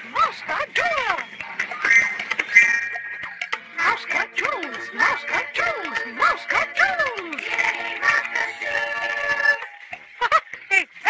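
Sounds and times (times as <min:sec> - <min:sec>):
backing track: 0:00.0 - 0:11.0
voices singing a long note: 0:03.7 - 0:09.8.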